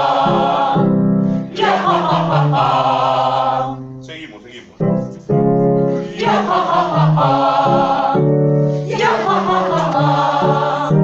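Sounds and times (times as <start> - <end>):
group singing vocal warm-up: 0.0 - 4.4, 5.9 - 11.0.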